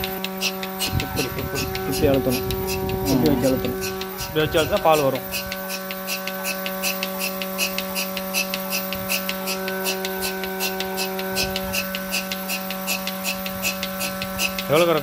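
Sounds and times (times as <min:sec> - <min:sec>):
pulsator hissing clicks: 0:00.0 - 0:15.0
vacuum pump motor hum: 0:00.0 - 0:15.0.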